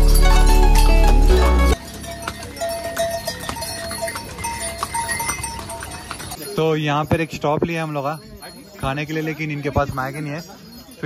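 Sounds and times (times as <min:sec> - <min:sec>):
hooves clopping on stone: 0:00.0 - 0:11.0
small harness bells ringing: 0:00.0 - 0:11.0.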